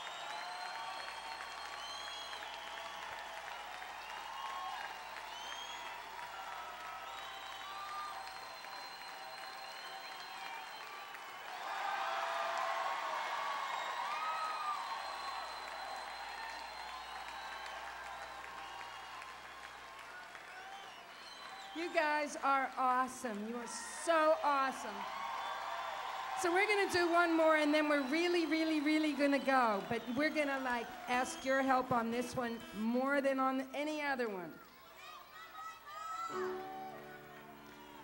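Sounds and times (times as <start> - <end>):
whistles: 0.0 - 11.5, 13.6 - 22.2, 25.3 - 26.1, 27.9 - 31.6, 37.6 - 38.0
audience applauding and cheering: 0.0 - 32.8, 34.5 - 38.0.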